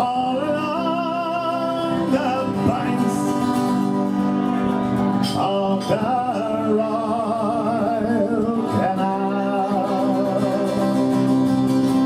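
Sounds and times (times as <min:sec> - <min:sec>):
man singing folk song: 0:00.0 - 0:12.0
strummed acoustic guitar: 0:00.0 - 0:12.0.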